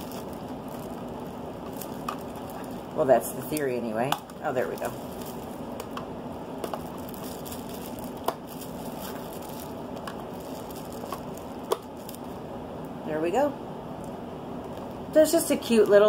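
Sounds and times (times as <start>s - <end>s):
plastic wrap crinkling: 0.0s - 12.4s, 14.0s - 16.0s
steady background hiss: 0.0s - 16.0s.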